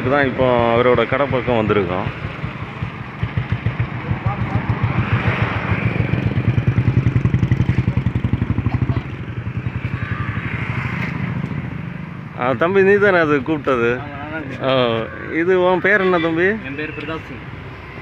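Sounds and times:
motorcycle engine idling: 0:00.1 - 0:17.8.

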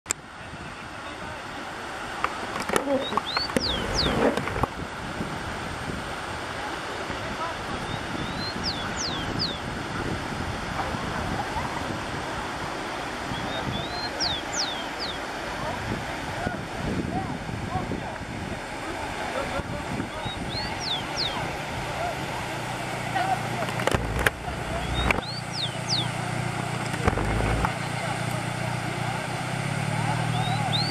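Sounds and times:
water rushing down spillway: 0:00.2 - 0:30.9
wind noise: 0:02.8 - 0:13.9, 0:15.7 - 0:18.7, 0:19.5 - 0:20.8, 0:23.6 - 0:26.0, 0:26.7 - 0:27.8
sparrow whistling song: 0:03.0 - 0:04.2, 0:07.8 - 0:09.6, 0:13.3 - 0:15.2, 0:20.2 - 0:21.4, 0:24.8 - 0:26.1, 0:30.3 - 0:30.9.

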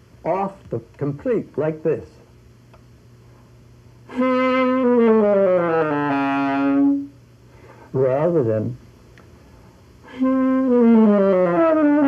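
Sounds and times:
saxophone note sliding down: 0:04.1 - 0:07.1, 0:10.1 - 0:12.0.

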